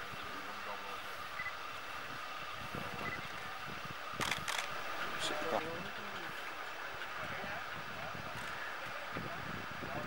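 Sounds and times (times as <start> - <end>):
faint murmured voices: 0.0 - 10.0.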